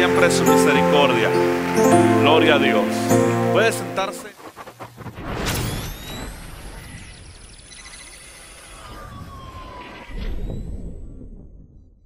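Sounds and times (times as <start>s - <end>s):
falling whistle-like glide: 5.5s - 11.6s.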